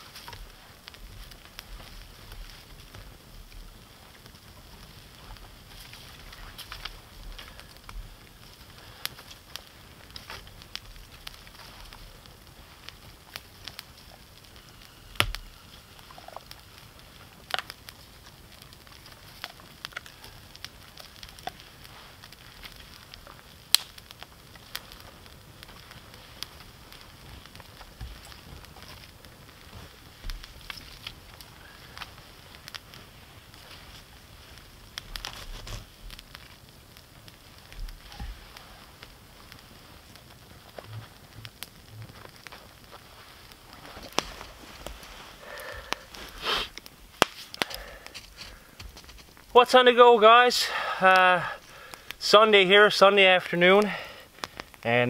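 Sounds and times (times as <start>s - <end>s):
campfire crackling: 0.0s - 55.0s
faint fire hiss: 0.0s - 55.0s
sharp pops and snaps: 0.0s - 55.0s.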